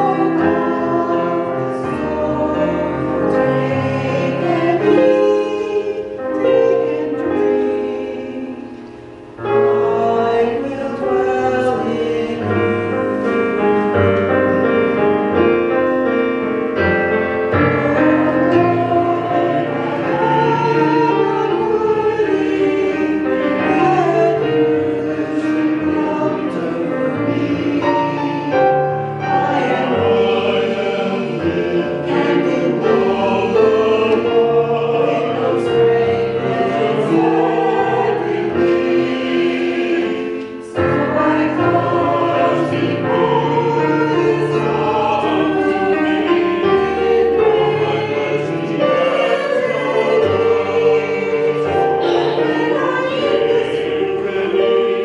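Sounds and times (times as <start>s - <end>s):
mixed choir singing in harmony: 0.0s - 55.0s.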